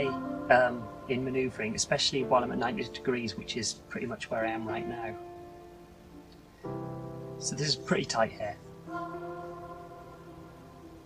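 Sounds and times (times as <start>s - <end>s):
held music chord: 0.0s - 11.0s.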